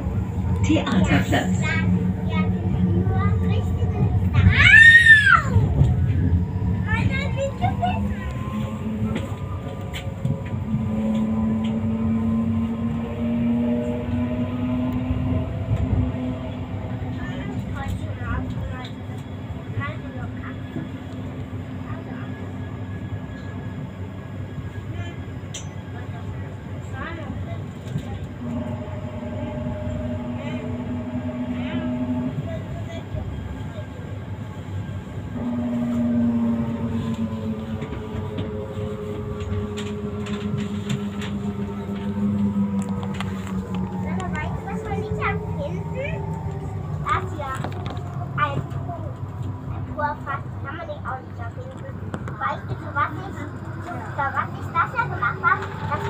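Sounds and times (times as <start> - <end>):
wheels rumbling on rails: 0.0 - 56.0.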